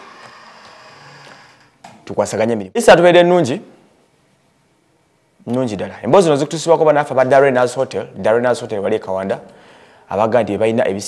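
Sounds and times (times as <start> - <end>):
faint room hiss: 0.0 - 11.0
man speaking: 5.4 - 9.5.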